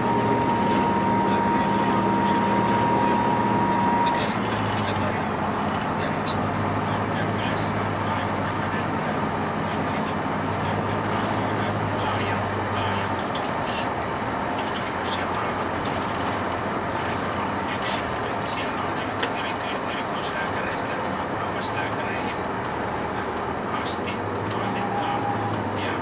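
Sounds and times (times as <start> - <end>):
bus engine and road noise: 0.0 - 26.0
low engine hum: 0.0 - 26.0.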